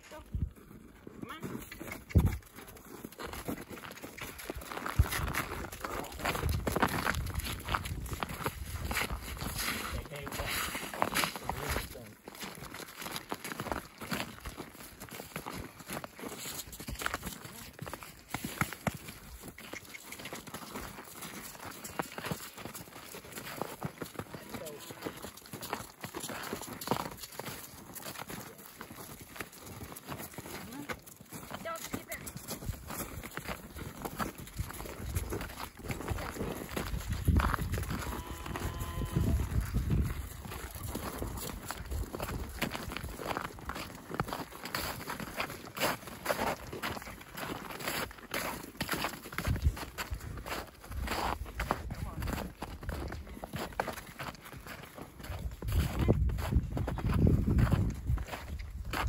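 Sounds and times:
cow hooves walking: 0:00.0 - 0:59.0
footsteps on packed snow: 0:00.0 - 0:59.0.

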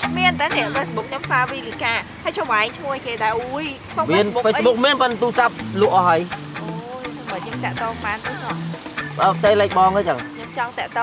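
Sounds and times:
woman talking: 0:00.0 - 0:04.8, 0:06.8 - 0:08.6, 0:10.3 - 0:11.0
man talking: 0:04.0 - 0:07.7, 0:09.2 - 0:10.4.

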